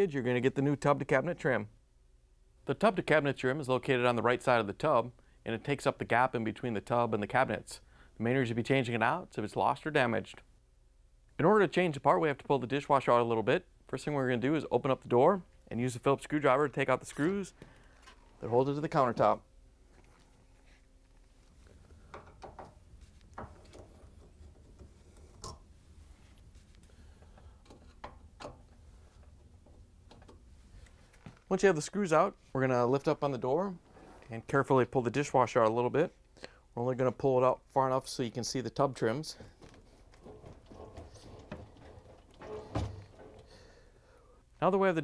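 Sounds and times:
dishwasher knocks and rattles: 0:40.2 - 0:43.5
dishwasher thump: 0:40.2 - 0:43.5.

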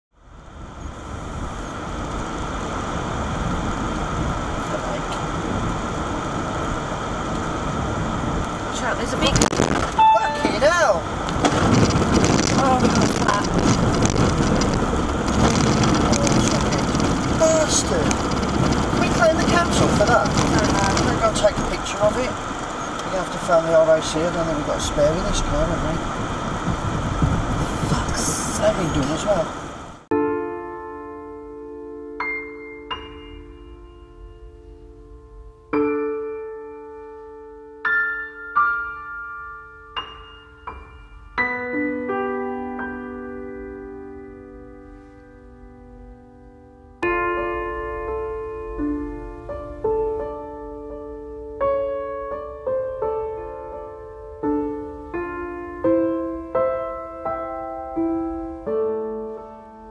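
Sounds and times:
car cabin road and engine noise: 0:00.2 - 0:30.1, 0:44.9 - 0:56.7
low thumps: 0:09.2 - 0:22.8
faint steady tone: 0:30.3 - 0:37.8.

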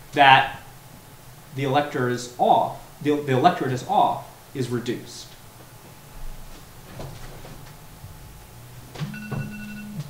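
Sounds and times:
faint steady electronic tone: 0:08.7 - 0:10.0.

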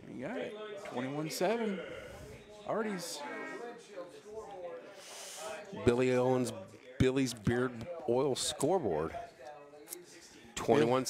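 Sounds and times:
men talking: 0:00.0 - 0:11.0
surrounding talk: 0:00.0 - 0:11.0.

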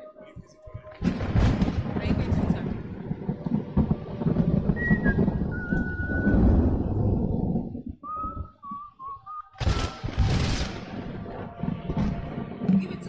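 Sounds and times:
low rumbling noise: 0:00.0 - 0:13.0
thin wavering whistled notes: 0:04.7 - 0:06.8, 0:08.0 - 0:10.1
sudden loud noisy burst: 0:09.6 - 0:13.0.

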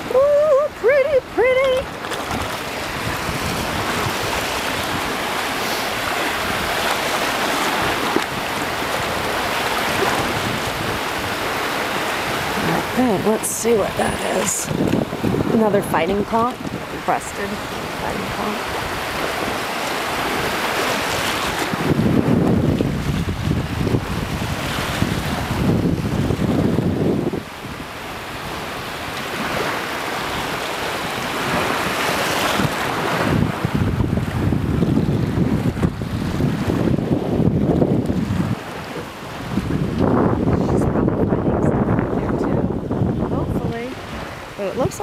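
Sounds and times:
small waves in shallow surf: 0:00.0 - 0:45.0
wind buffeting microphone: 0:00.0 - 0:45.0.

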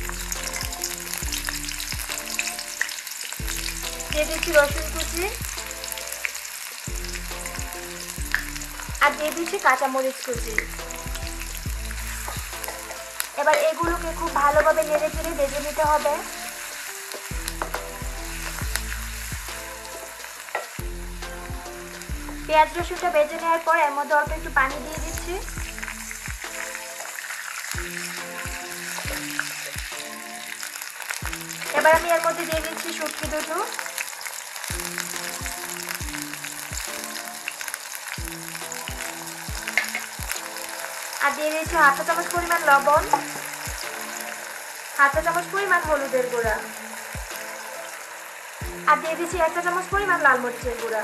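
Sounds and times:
background music with low beat: 0:00.0 - 0:09.6, 0:10.4 - 0:23.6, 0:24.2 - 0:26.9, 0:27.8 - 0:30.6, 0:31.2 - 0:33.6, 0:34.7 - 0:37.6, 0:38.2 - 0:41.0, 0:41.6 - 0:44.4, 0:45.2 - 0:47.8, 0:48.6 - 0:51.0
onions sizzling in oil: 0:00.0 - 0:51.0
wooden spoon scraping a pan: 0:10.5 - 0:22.5, 0:38.1 - 0:41.2
wooden spatula stirring: 0:10.5 - 0:23.2.

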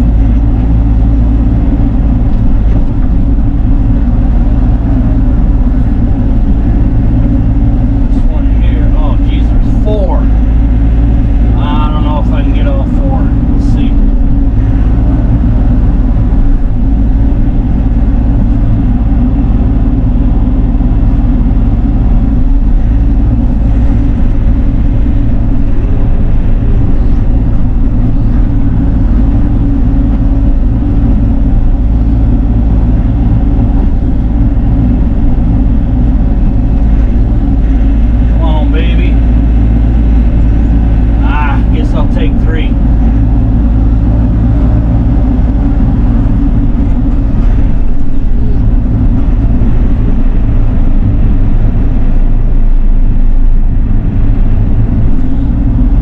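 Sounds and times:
excavator diesel engine and hydraulics: 0:00.0 - 0:56.0.

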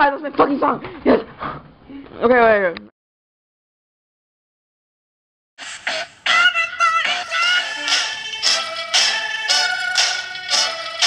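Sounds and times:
recorded song with singing voice: 0:05.6 - 0:11.0.

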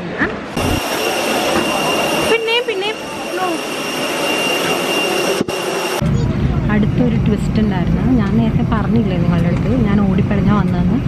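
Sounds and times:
jet engine rush and whine: 0:00.4 - 0:11.0.

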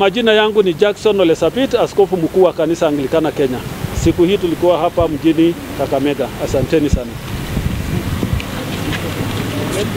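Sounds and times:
wind buffeting microphone: 0:03.6 - 0:09.9.

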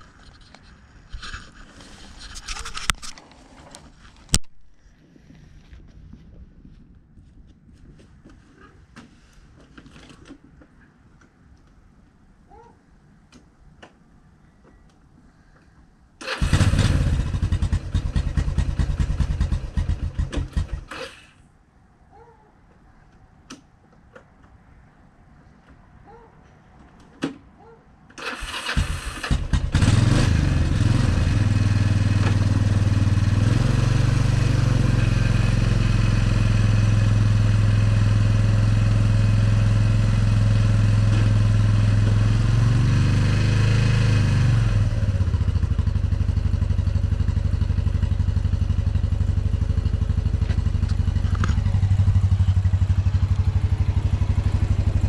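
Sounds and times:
engine cranking and running: 0:16.2 - 0:21.4, 0:28.2 - 0:35.7.

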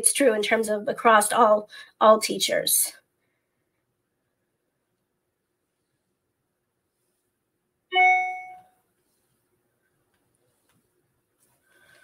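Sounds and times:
bright chime ding: 0:07.9 - 0:08.7.

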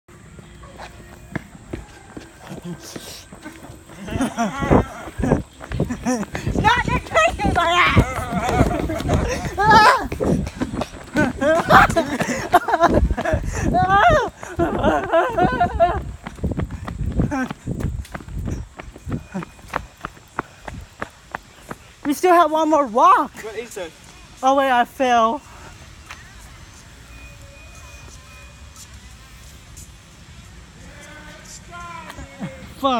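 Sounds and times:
footsteps on dirt path: 0:00.1 - 0:24.2.

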